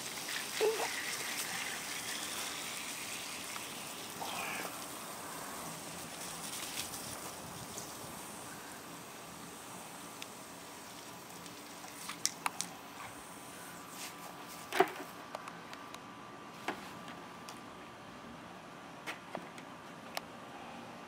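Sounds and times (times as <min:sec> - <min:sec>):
hose water splashing on grass: 0:00.0 - 0:14.8.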